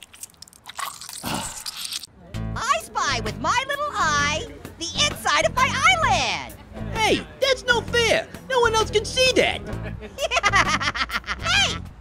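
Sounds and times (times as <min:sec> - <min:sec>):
cartoon crunching and squishing: 0:00.0 - 0:02.1.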